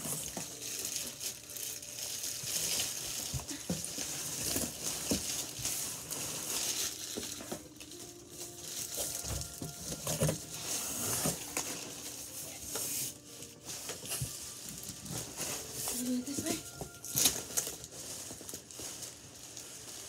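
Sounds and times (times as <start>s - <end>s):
plastic wrapping crinkling: 0.0s - 20.0s.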